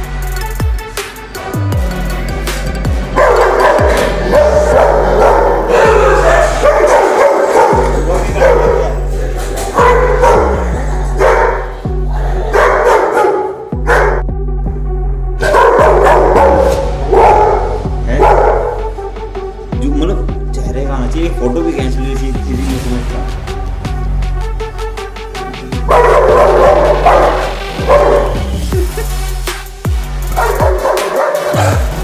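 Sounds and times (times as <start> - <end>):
electronic music with heavy bass: 0.0 - 32.0
dog barking: 3.1 - 9.0, 9.7 - 11.8, 12.5 - 14.2, 15.4 - 18.9, 25.8 - 28.5, 30.3 - 32.0.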